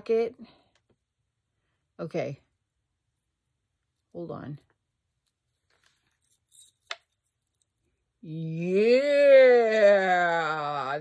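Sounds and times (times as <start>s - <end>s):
metal chain clinking: 2.5s - 8.1s.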